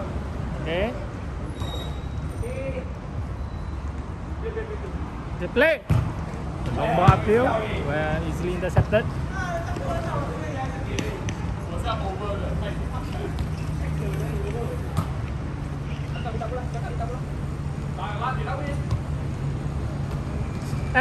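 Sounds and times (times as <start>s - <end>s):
ball being kicked: 5.8s - 7.3s.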